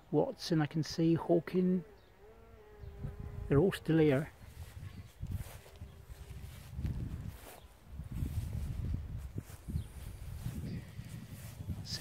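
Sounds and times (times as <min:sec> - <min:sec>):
wind buffeting microphone: 0:02.5 - 0:12.0
footsteps through long grass: 0:03.8 - 0:12.0.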